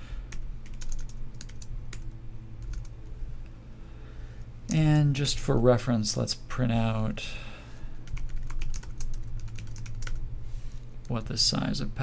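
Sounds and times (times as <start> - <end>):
low steady hum: 0.0 - 12.0
typing on computer keyboard: 0.3 - 2.0, 2.6 - 2.9, 8.0 - 10.2.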